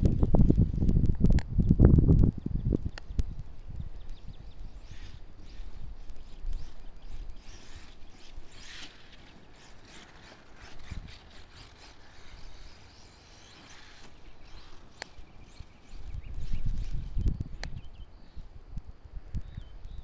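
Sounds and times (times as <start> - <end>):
wind rumbling on microphone: 0.0 - 20.0
toy truck motor whirring and rattling: 4.1 - 17.8.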